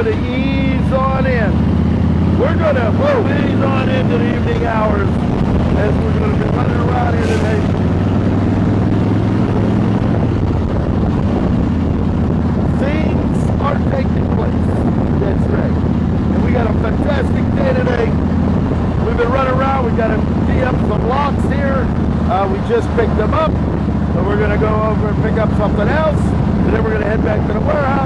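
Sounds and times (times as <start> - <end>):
motorcycle engine running: 0.0 - 28.0
wind rushing over microphone: 0.0 - 28.0.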